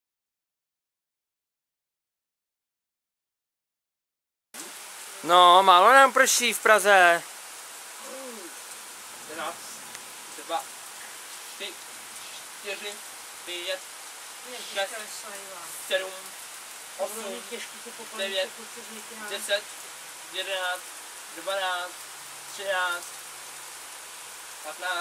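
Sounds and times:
light rain falling: 0:04.6 - 0:25.0
quiet voices talking: 0:07.9 - 0:13.8, 0:14.4 - 0:19.7.

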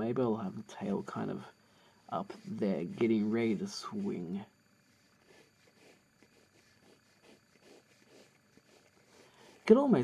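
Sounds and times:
pencil scratching on paper: 0:02.2 - 0:04.3, 0:04.9 - 0:10.0.

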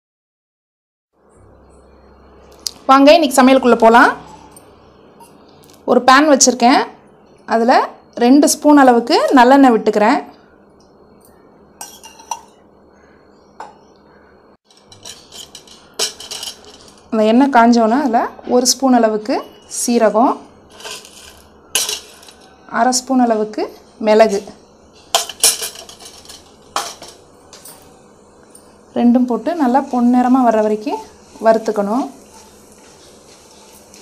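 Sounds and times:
metal spoon clinking on pan: 0:11.8 - 0:12.6, 0:14.7 - 0:17.1, 0:20.7 - 0:22.6, 0:25.1 - 0:28.0
spoon clinking against frying pan: 0:11.8 - 0:12.6.

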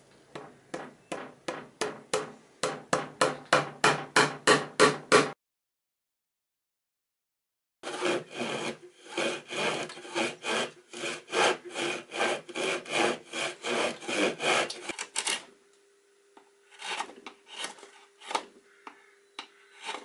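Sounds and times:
saw cutting wood: 0:07.8 - 0:15.0, 0:19.8 - 0:20.0.

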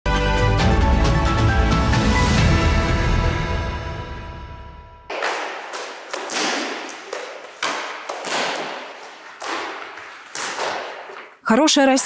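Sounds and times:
theme music: 0:00.1 - 0:05.1.

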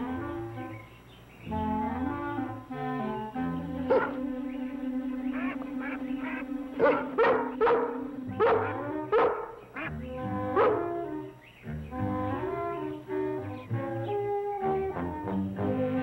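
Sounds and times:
background music with held notes: 0:00.0 - 0:16.0
dog barking: 0:03.9 - 0:04.2, 0:06.8 - 0:09.6, 0:10.5 - 0:11.0.

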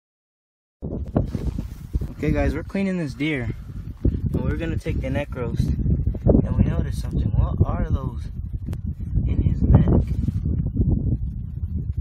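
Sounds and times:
wind buffeting microphone: 0:00.8 - 0:12.0.

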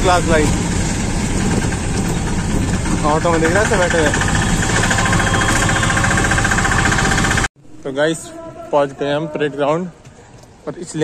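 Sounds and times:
auto-rickshaw engine rumbling: 0:00.0 - 0:07.5
person speaking: 0:07.7 - 0:10.0.

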